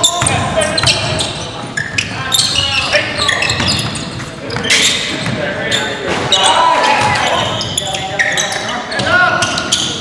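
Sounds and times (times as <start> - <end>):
sneaker squeaks: 0.0 - 10.0
players shouting: 6.0 - 10.0.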